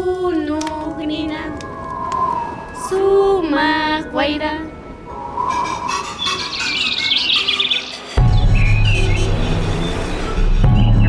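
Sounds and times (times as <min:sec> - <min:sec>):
birds chirping: 0:01.7 - 0:11.0
music with deep bass: 0:08.1 - 0:11.0.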